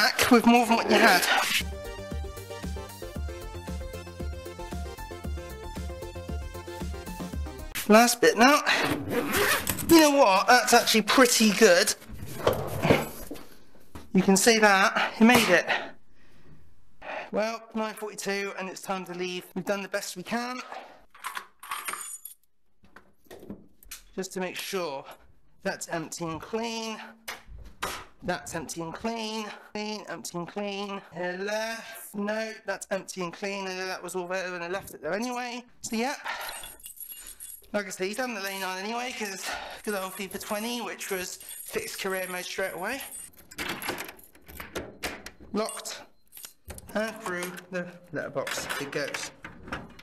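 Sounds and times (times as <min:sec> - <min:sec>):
keys rattling: 0:21.1 - 0:22.5, 0:36.2 - 0:47.7
small metal pieces jingling: 0:21.2 - 0:22.5, 0:36.3 - 0:44.6, 0:45.6 - 0:47.4
door lock and handle clicking: 0:41.3 - 0:47.7, 0:48.4 - 0:50.0.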